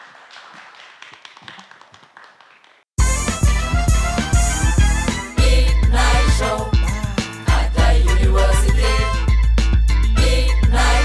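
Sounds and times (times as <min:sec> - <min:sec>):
audience applause: 0:00.0 - 0:02.9.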